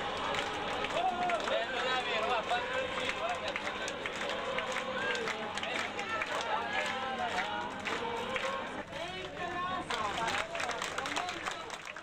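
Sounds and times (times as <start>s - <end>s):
crowd babble of voices: 0.0s - 12.0s.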